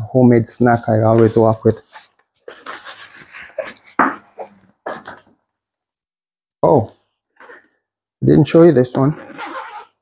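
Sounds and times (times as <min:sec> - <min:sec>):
zippers rasping: 0:09.1 - 0:10.0.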